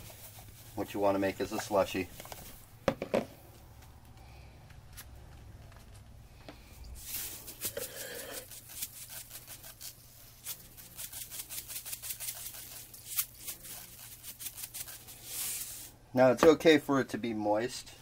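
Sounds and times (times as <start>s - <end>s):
salt pouring into plastic tub: 14.0s - 15.9s.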